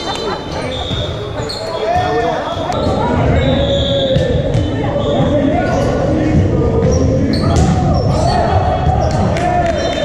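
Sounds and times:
voices echoing in hall: 0.0 - 10.0
ball bouncing on gym floor: 6.8 - 9.4.

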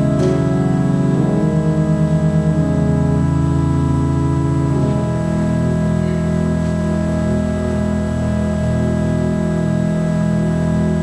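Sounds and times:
church organ sustained chord: 0.0 - 11.0.

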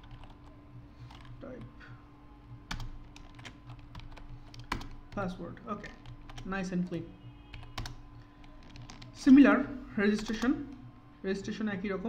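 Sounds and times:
computer keyboard keystrokes: 0.0 - 0.4, 2.7 - 5.2, 5.9 - 6.5, 7.5 - 9.2
faint steady hum: 0.0 - 12.0.

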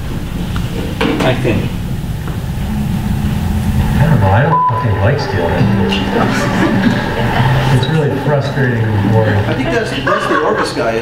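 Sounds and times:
low rumble: 0.0 - 10.0
low steady hum: 0.0 - 11.0.

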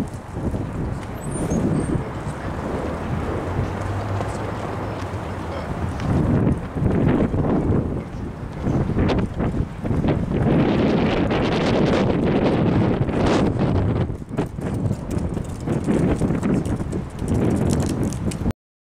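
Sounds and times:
wind buffeting microphone: 0.0 - 18.5.

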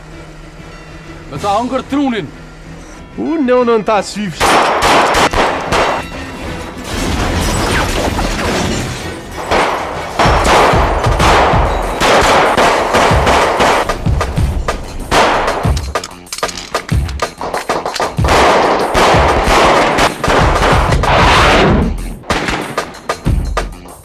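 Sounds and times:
automatic gunfire bursts: 9.5 - 13.9, 17.7 - 21.4.

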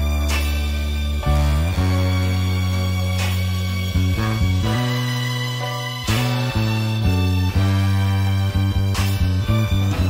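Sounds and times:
hip-hop instrumental low notes: 0.0 - 10.0.

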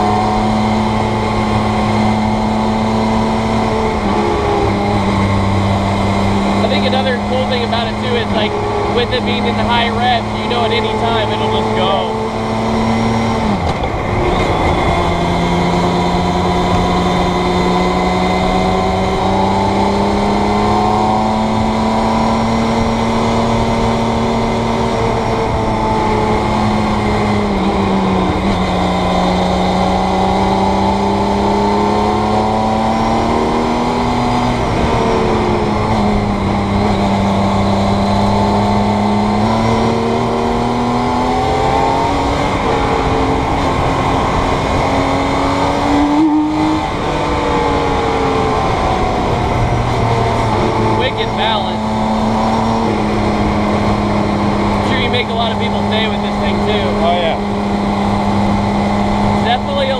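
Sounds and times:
car engine pulling through gears: 0.0 - 59.9.

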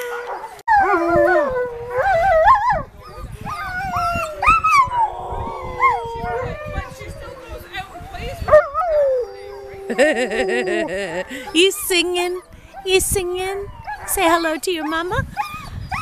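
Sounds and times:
dogs howling: 0.0 - 12.5, 13.6 - 16.0.

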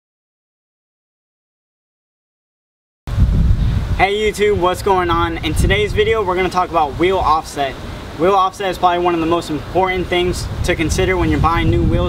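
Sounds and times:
wind buffeting microphone: 3.1 - 12.0.

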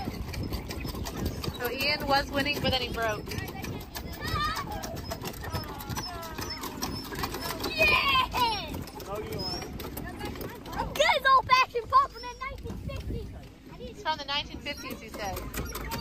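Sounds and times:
children and adults chattering: 0.0 - 16.0
child's high-pitched voice: 3.2 - 6.7, 7.4 - 8.8, 10.0 - 14.1.

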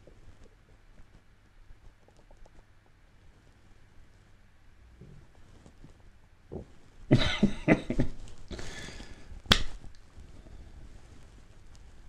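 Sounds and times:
man laughing in breathy bursts: 7.1 - 9.0.

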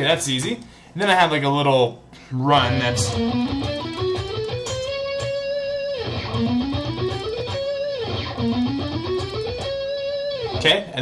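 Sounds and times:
electric guitar climbing run: 2.6 - 10.7.

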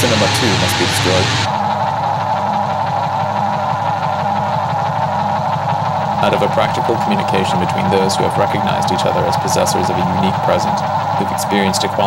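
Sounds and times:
engine idling drone: 0.0 - 12.0.

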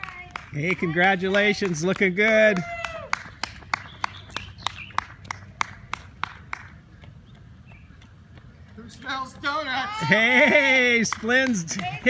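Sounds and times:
running footsteps on asphalt: 0.0 - 12.0.

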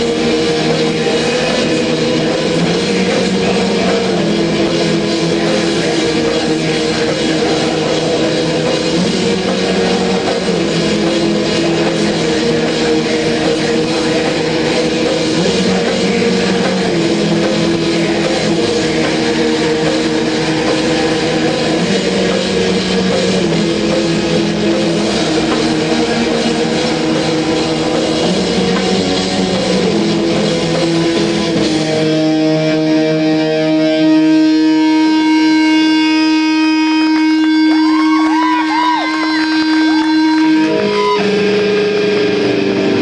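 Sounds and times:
distorted electric guitars: 0.0 - 43.0.

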